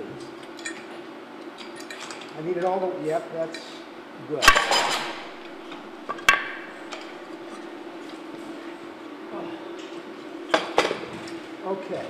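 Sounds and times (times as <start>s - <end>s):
steady low hum: 0.0s - 12.0s
metal frame parts clinking: 4.4s - 7.2s.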